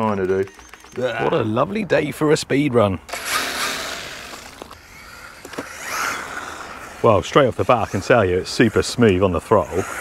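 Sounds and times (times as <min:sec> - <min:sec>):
rc car motor and tyres: 0:00.0 - 0:02.2, 0:02.8 - 0:10.0.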